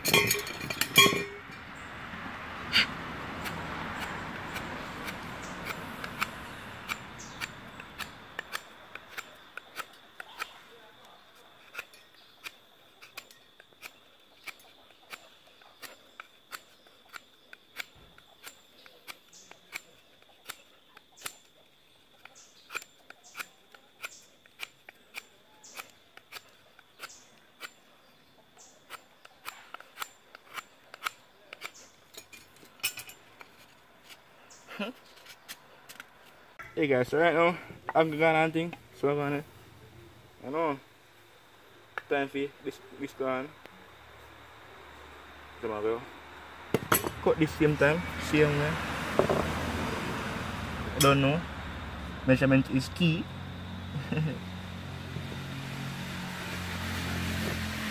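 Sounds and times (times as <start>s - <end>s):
knife snicking into wood: 2.7s - 21.6s, 22.2s - 31.9s.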